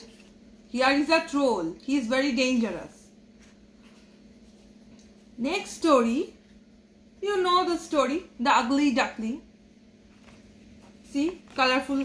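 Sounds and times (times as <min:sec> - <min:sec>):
steady low hum: 0:00.0 - 0:12.0
paper page rustle: 0:10.1 - 0:12.0.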